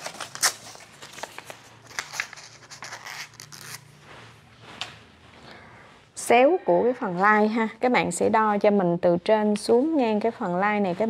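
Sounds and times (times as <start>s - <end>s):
paper rustling and scraping: 0.0s - 5.2s.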